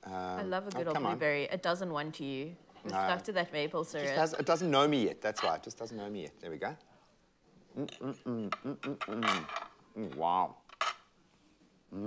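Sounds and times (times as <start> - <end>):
person murmuring: 7.8 - 10.4
plate and cutlery clinking: 8.9 - 9.8.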